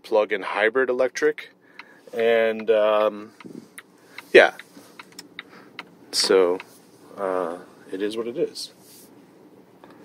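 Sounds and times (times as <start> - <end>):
light irregular clicks: 2.6 - 6.7.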